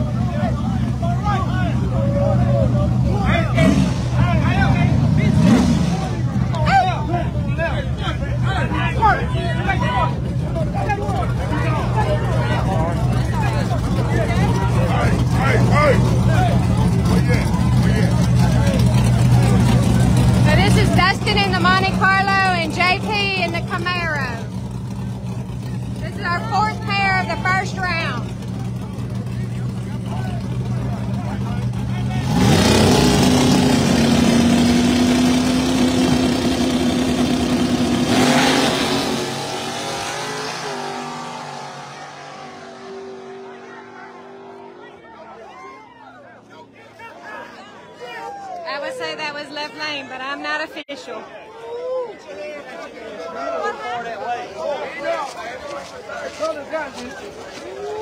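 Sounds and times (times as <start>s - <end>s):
cars accelerating at full throttle: 0.0s - 45.3s
car engines idling: 0.0s - 51.5s, 52.4s - 58.0s
people shouting: 43.4s - 46.2s, 46.8s - 48.9s.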